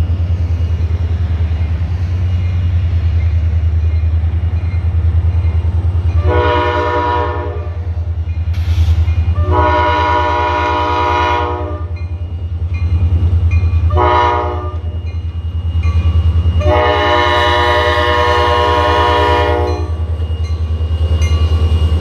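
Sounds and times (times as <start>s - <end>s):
locomotive air horn blasts: 6.2s - 7.8s, 9.3s - 12.0s, 13.9s - 14.9s, 16.6s - 20.0s.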